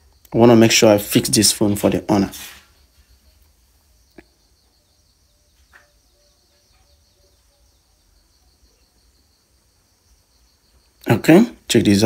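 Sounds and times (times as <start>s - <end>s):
faint high chirping: 0.0s - 12.0s.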